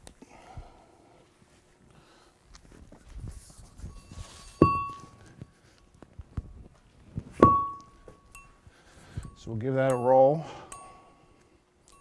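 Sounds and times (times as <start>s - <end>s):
metal roller thunk and ring: 4.0s - 5.2s, 7.4s - 8.5s.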